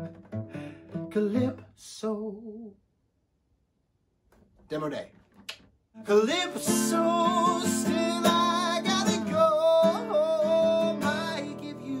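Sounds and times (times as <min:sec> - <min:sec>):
acoustic guitar strumming: 0:00.0 - 0:01.8, 0:06.0 - 0:12.0
man singing: 0:00.5 - 0:02.8, 0:06.0 - 0:12.0.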